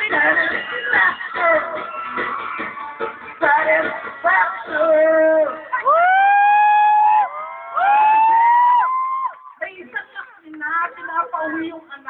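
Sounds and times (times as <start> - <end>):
audience screaming: 0.7 - 3.3, 5.8 - 9.5.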